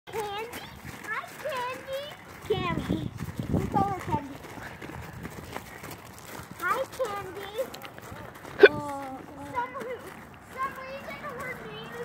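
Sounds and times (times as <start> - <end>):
children calling: 0.1 - 12.0
footsteps on gravel: 0.1 - 12.0.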